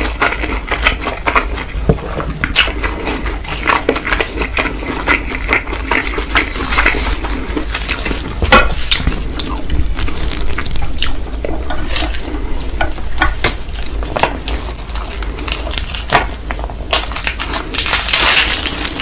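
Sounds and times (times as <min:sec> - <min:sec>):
wet noodle chewing: 0:00.0 - 0:19.0.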